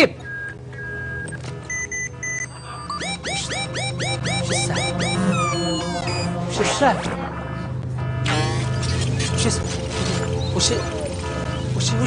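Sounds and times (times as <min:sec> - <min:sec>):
low electronic hum: 0:00.2 - 0:12.0
short beeps: 0:00.3 - 0:06.7
rising swooping electronic tones: 0:02.9 - 0:07.0.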